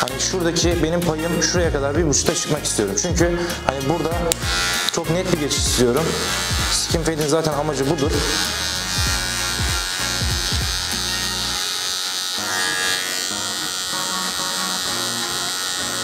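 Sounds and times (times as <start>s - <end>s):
hair clipper buzzing: 4.0s - 16.0s.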